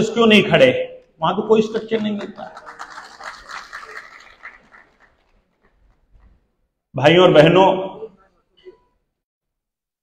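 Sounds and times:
man's amplified voice echoing: 0:00.0 - 0:02.7, 0:06.9 - 0:08.4.

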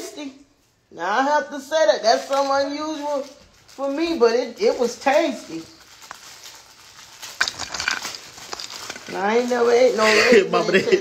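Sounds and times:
ornament balls rustling and clicking: 0:02.0 - 0:10.7.

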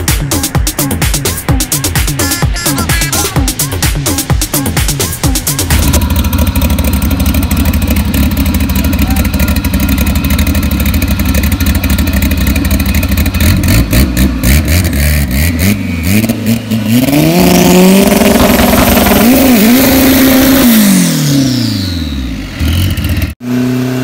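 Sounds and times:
engine revving: 0:03.4 - 0:24.0
car engine idling loudly: 0:05.4 - 0:15.7, 0:17.8 - 0:23.8.

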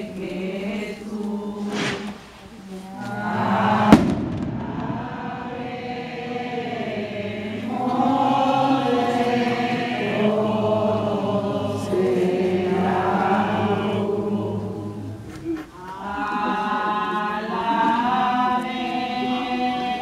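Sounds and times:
crowd singing a hymn: 0:00.0 - 0:20.0.

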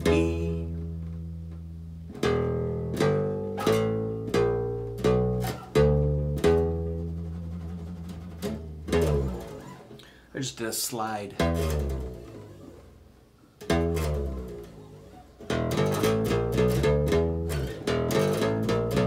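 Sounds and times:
electric bass guitar plucked notes: 0:00.0 - 0:10.2, 0:11.4 - 0:19.0.

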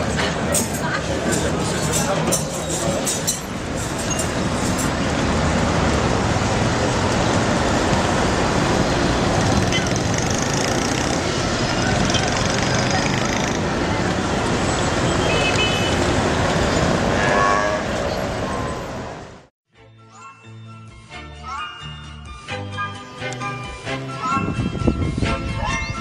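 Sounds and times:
crowd chatter: 0:00.0 - 0:04.0, 0:11.1 - 0:14.6
motorbikes passing: 0:00.0 - 0:19.4
car traffic: 0:00.0 - 0:19.5.

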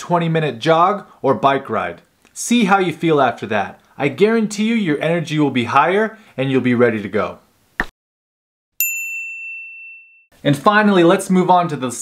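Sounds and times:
bright ding chime: 0:08.8 - 0:10.3.

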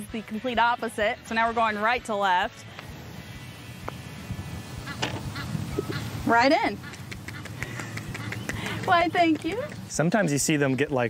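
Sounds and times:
putter striking golf ball: 0:05.0 - 0:05.3.

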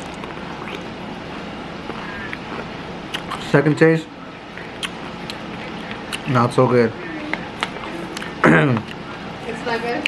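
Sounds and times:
person chewing crunchy food: 0:00.0 - 0:01.0, 0:01.8 - 0:03.5, 0:04.6 - 0:06.3
steady background noise: 0:00.0 - 0:10.0.

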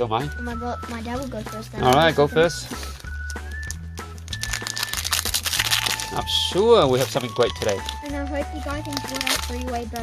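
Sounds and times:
background music: 0:00.0 - 0:10.0
foil wrapper crinkling and tearing: 0:02.8 - 0:10.0.

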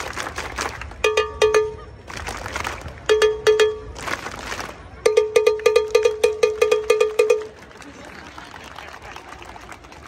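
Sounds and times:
cowbell struck with a stick: 0:01.0 - 0:01.8, 0:03.1 - 0:03.9, 0:05.1 - 0:07.4
crowd chatter: 0:06.8 - 0:10.0.

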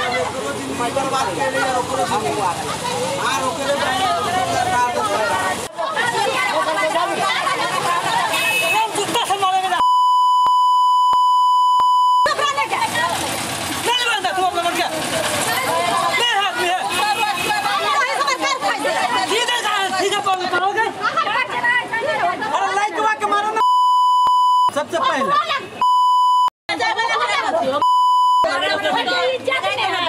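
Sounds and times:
excited speech: 0:00.0 - 0:09.8, 0:12.2 - 0:23.6, 0:28.4 - 0:30.0
people arguing in a crowd: 0:00.0 - 0:25.9, 0:26.7 - 0:30.0
high-pitched censor bleep: 0:09.8 - 0:12.3, 0:23.6 - 0:24.7, 0:25.8 - 0:26.5, 0:27.8 - 0:28.5.

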